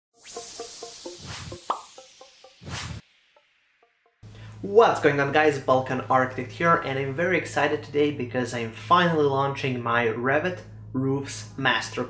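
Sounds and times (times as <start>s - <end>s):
sharp hit with rising tone: 0.1s - 4.2s
plucked blips: 0.2s - 3.0s
whoosh: 0.2s - 3.3s.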